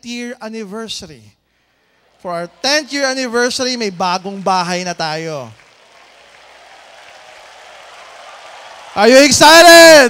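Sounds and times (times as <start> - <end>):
audience applause: 1.9 - 10.0.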